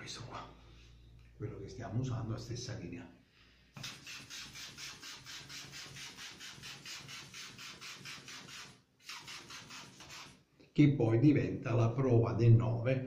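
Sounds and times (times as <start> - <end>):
atomizer spraying hissing puffs: 3.7 - 10.4.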